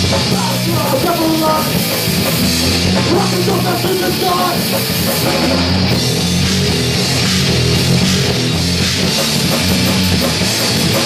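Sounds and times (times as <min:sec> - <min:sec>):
punk rock band playing: 0:00.0 - 0:11.0.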